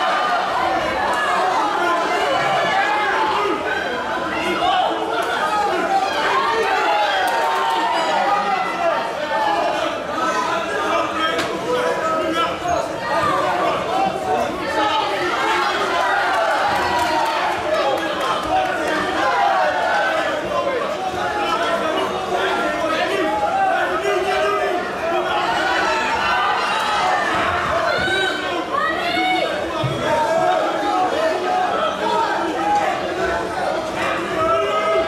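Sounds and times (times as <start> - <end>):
crowd chattering and shouting: 0.0 - 35.0.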